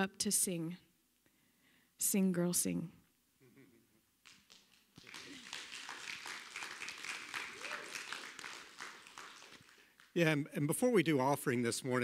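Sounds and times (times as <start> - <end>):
people clapping: 4.2 - 10.6.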